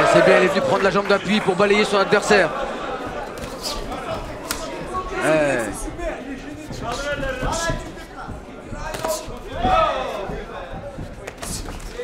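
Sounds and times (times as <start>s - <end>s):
punches and kicks thudding: 6.7s - 12.0s.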